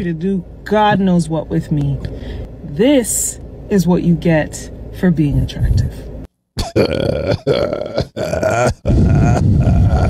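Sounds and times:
man laughing hard: 0:06.6 - 0:10.0.

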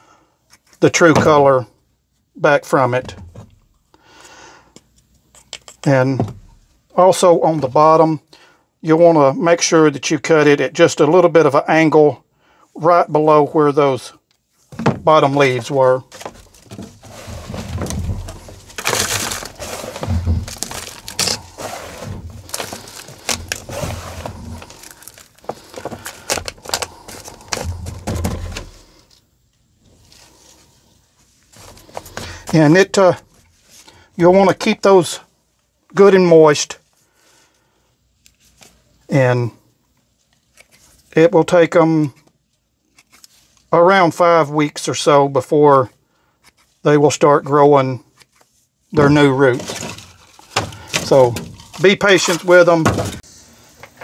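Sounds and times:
soil crumbling and rustling: 0:14.6 - 0:29.1, 0:48.9 - 0:53.3
soft rustle: 0:38.2 - 0:39.1, 0:42.4 - 0:43.8.

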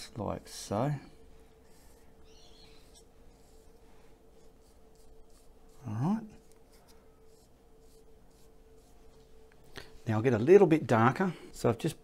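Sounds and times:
faint steady hum: 0:00.0 - 0:12.0
paintbrush scratching on canvas: 0:01.6 - 0:09.2.

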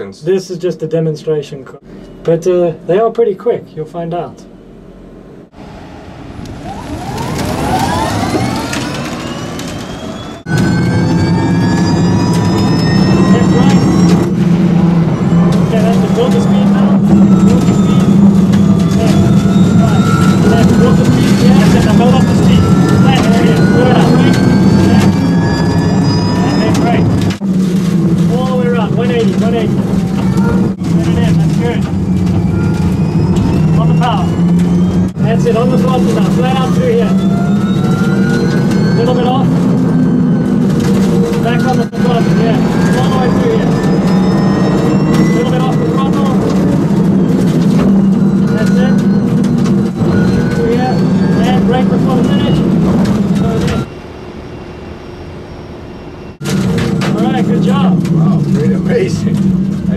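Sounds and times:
electric motor whining: 0:04.8 - 0:53.9
road and wind noise rumble: 0:04.8 - 0:53.9.

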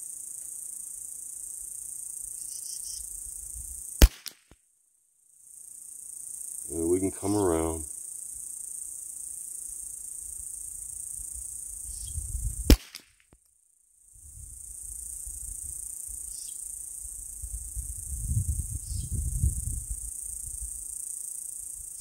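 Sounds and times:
insects buzzing: 0:00.0 - 0:04.3, 0:05.2 - 0:13.0, 0:14.2 - 0:22.0
rifle shots: 0:04.0 - 0:04.4, 0:12.7 - 0:13.0.

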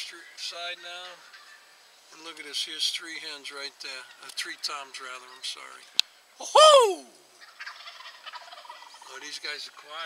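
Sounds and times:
turkeys gobbling: 0:00.9 - 0:01.9, 0:06.5 - 0:10.0.

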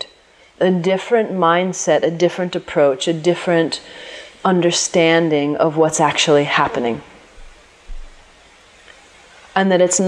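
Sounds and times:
faint steady hiss: 0:00.0 - 0:10.0
soft low bumps: 0:05.9 - 0:08.4.

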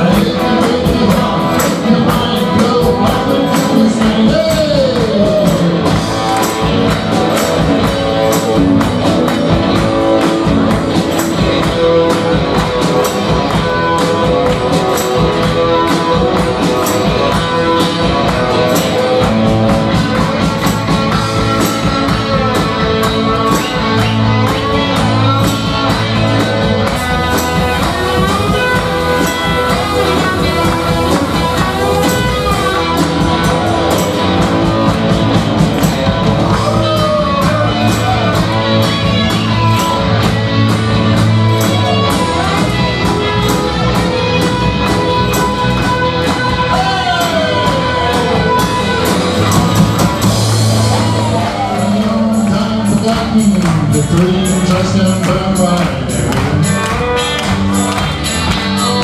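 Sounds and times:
drum kit steady beat: 0:00.0 - 0:59.0
electric guitars: 0:00.0 - 0:59.0.

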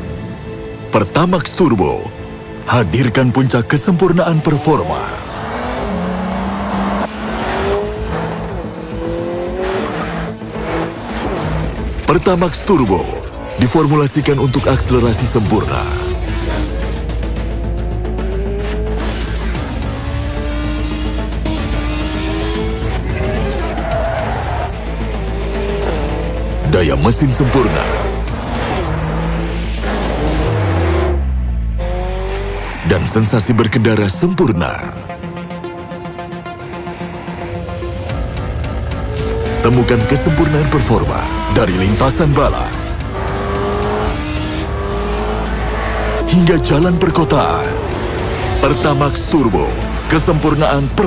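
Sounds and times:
car engine accelerating: 0:03.1 - 0:51.0.

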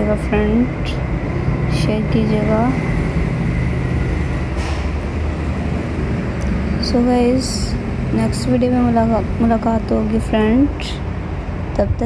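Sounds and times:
low rumbling background noise: 0:00.0 - 0:12.0.

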